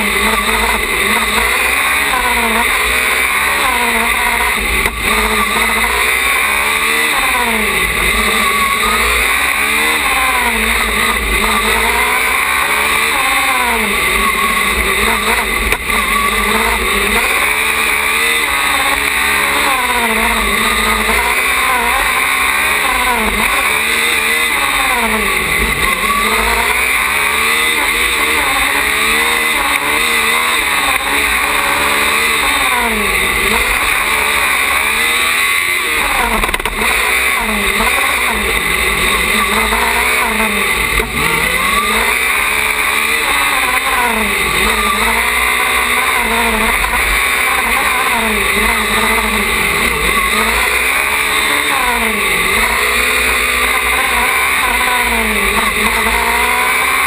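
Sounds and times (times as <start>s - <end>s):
race car engine accelerating: 0.0s - 57.0s.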